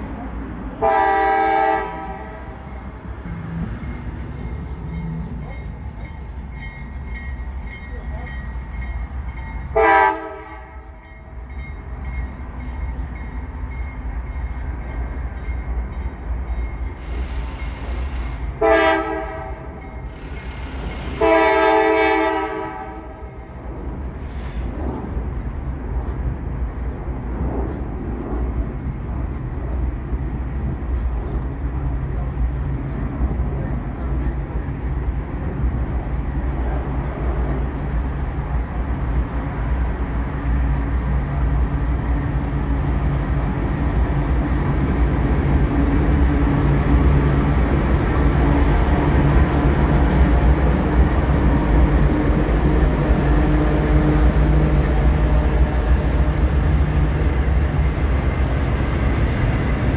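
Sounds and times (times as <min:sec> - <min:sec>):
low train rumble: 0:00.0 - 0:59.9
locomotive air horn blasts: 0:00.8 - 0:02.6, 0:09.8 - 0:10.9, 0:17.3 - 0:19.8, 0:21.1 - 0:23.3.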